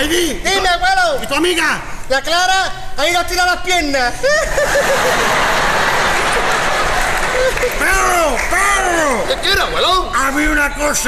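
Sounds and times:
audience laughing and clapping: 4.2 - 10.5.

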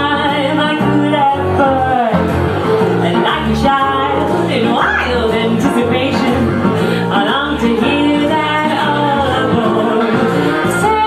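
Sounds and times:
instrumental backing music: 0.0 - 11.0.

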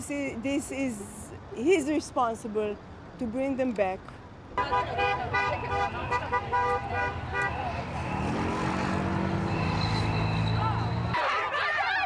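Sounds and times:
car horns tooting: 4.6 - 8.7, 9.3 - 11.3.

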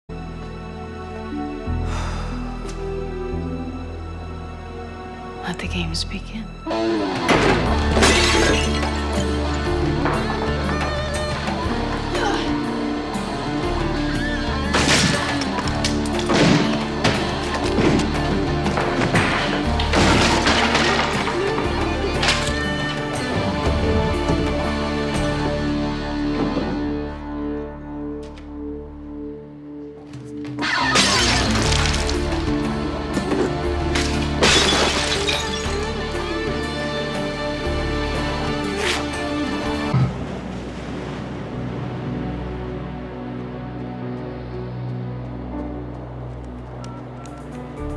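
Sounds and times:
dramatic score music: 0.1 - 47.9
things smashing: 7.3 - 9.4, 14.7 - 23.2, 30.6 - 32.5, 33.4 - 36.0
glass shattering: 7.9 - 9.4, 30.6 - 32.3, 34.0 - 36.0.

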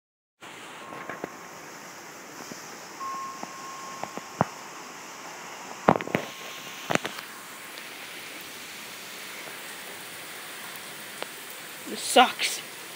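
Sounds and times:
steady rain hiss: 0.4 - 12.9.

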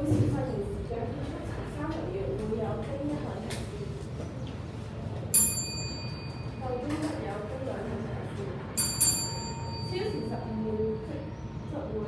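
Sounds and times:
small metal bell ding: 5.4 - 6.6, 8.8 - 10.4.

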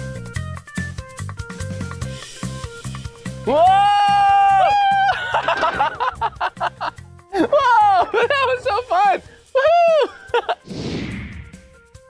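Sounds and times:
upbeat music with drum beat: 0.0 - 12.0
man yelling excitedly: 3.5 - 5.2, 7.5 - 10.1
man laughing: 4.8 - 8.8, 9.5 - 10.6.

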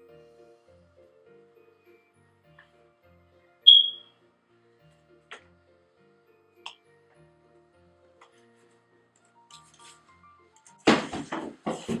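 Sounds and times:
soft background music: 0.0 - 12.0
shrill high-pitched tone: 3.7 - 4.1.

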